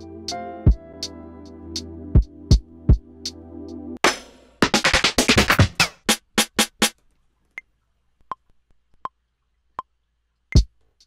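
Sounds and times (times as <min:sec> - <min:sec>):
snare drum samples: 0:04.0 - 0:06.9
metronome ticking: 0:10.5 - 0:10.8.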